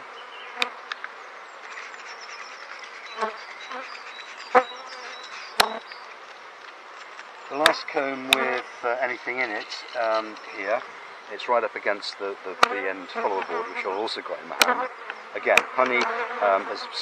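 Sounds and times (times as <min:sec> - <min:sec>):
honeybees buzzing: 0:00.0 - 0:06.4, 0:07.0 - 0:17.0.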